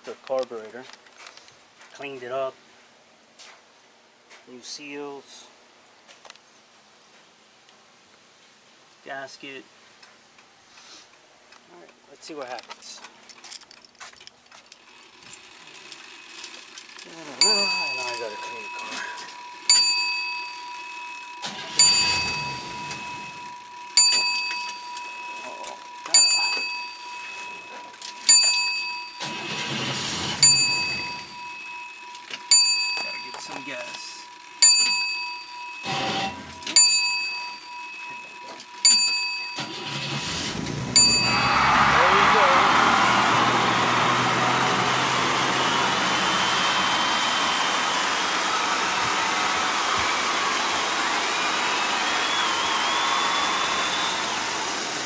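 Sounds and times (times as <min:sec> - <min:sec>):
car engine starting and running: 0:14.8 - 0:36.8, 0:39.5 - 0:55.0
short noisy bursts: 0:14.8 - 0:55.0
steady high tone: 0:17.0 - 0:55.0
bell-like ding: 0:17.4 - 0:40.0, 0:41.0 - 0:41.8.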